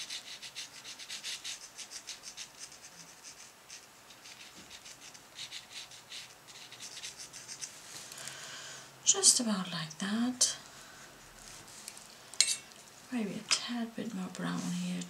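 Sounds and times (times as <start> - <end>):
paintbrush stroking on paper: 11.2 - 12.1, 14.3 - 15.0.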